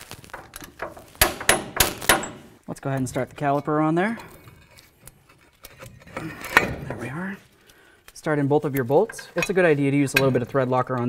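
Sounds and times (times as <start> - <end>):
metallic clinks and scraping: 0.3 - 11.0.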